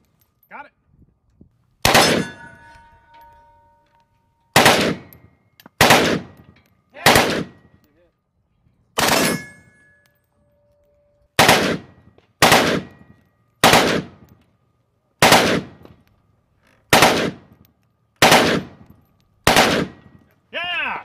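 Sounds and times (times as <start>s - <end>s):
rifle firing full auto bursts: 4.6s - 5.1s, 5.8s - 6.3s, 7.1s - 7.6s, 11.4s - 12.9s, 13.6s - 14.2s, 15.2s - 15.8s, 16.9s - 17.4s, 18.2s - 18.8s, 19.4s - 20.0s.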